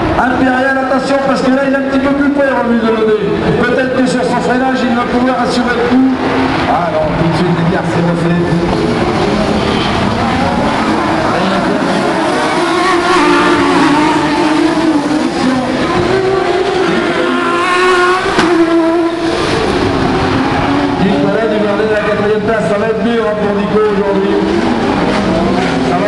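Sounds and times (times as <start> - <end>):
racing car engines revving: 0.0 - 26.0.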